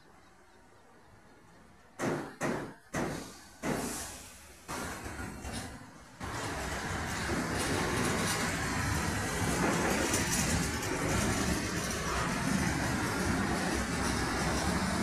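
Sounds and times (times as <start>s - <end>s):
train wheels rumbling on rail: 1.9s - 15.0s.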